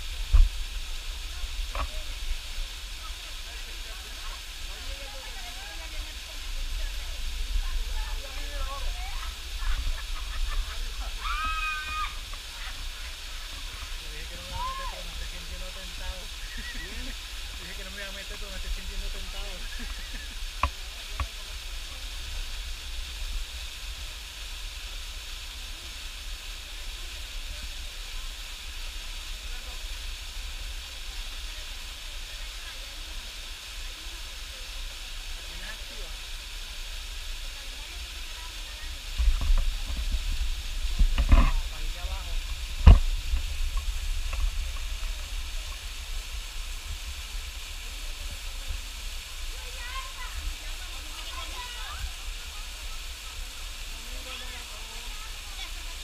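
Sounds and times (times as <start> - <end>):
waterfall splashing into pool: 0.0 - 56.0.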